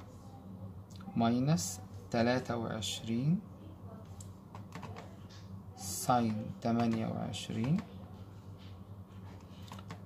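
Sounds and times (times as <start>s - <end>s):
low steady hum: 0.0s - 10.0s
calculator keys clicking: 6.2s - 7.9s, 9.5s - 10.0s.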